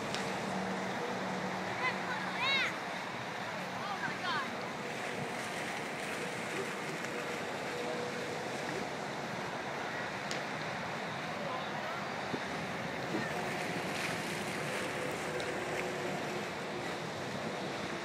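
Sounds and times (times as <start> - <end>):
faint voices: 1.5 - 18.0.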